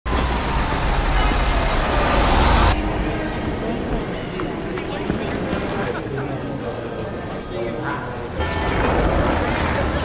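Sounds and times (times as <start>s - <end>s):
city street traffic: 0.0s - 10.0s
bus engine rumbling: 0.1s - 6.0s.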